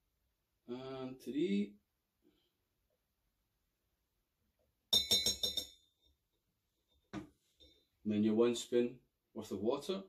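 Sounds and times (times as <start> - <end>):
metal spoon clinking on cocktail shaker: 5.0 - 5.8.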